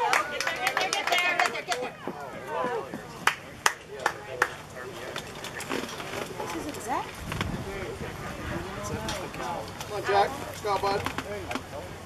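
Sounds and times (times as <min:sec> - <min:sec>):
sharp hand claps: 0:00.0 - 0:01.9, 0:03.0 - 0:04.6
faint voices: 0:00.0 - 0:12.0.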